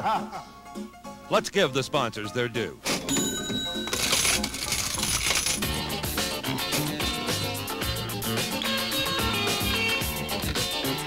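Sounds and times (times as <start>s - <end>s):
cash register sound effect: 2.9s - 5.8s
coins clinking: 3.0s - 5.9s
music with plucked riff: 4.3s - 11.0s.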